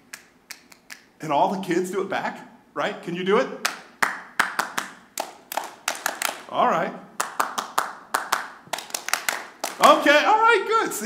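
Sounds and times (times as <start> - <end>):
rhythmic hand claps: 0.0 - 1.1, 3.6 - 6.5, 7.2 - 10.1.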